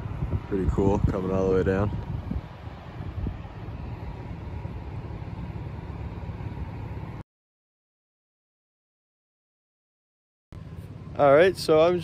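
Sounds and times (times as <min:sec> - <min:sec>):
truck engine rumble: 0:00.0 - 0:07.2, 0:10.6 - 0:12.0.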